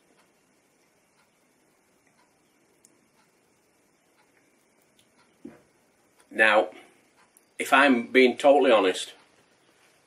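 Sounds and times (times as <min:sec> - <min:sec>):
faint ticks: 0:00.0 - 0:07.6.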